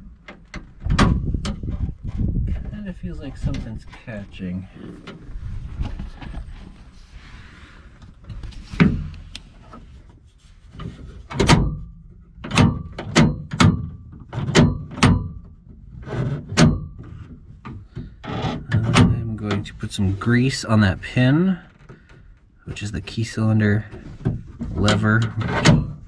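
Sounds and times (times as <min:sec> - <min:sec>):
door latch metal clacks: 0:12.4 - 0:15.5, 0:24.9 - 0:26.0.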